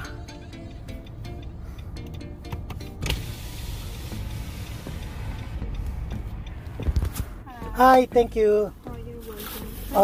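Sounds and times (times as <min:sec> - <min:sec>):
background music: 0:00.0 - 0:10.0
outside ambient noise: 0:00.0 - 0:10.0
car power window lowering: 0:02.9 - 0:05.0.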